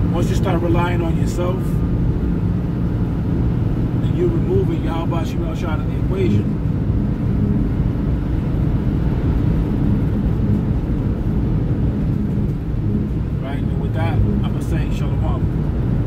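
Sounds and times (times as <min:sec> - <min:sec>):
low rumbling background noise: 0:00.0 - 0:16.0.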